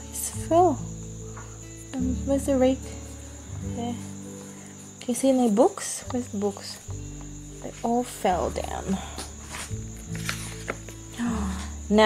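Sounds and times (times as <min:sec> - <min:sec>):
soft background music: 0:00.0 - 0:12.0
book page turning: 0:09.2 - 0:11.0.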